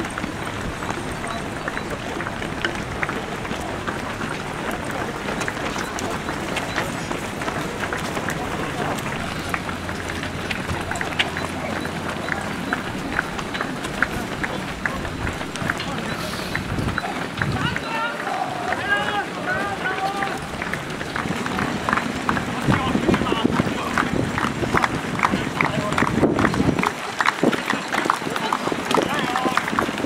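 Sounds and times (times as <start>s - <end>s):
runners' footsteps on asphalt: 0.0s - 30.0s.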